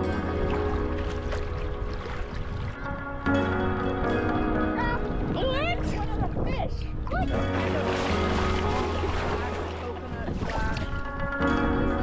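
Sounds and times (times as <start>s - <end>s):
sea water splashing: 0.0s - 3.3s, 4.7s - 11.1s
faint background music: 0.0s - 12.0s
wind buffeting microphone: 0.0s - 12.0s.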